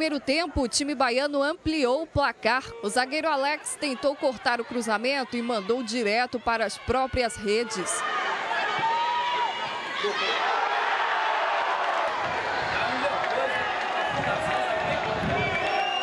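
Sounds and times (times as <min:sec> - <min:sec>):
stadium crowd shouting and cheering: 0:00.0 - 0:16.0.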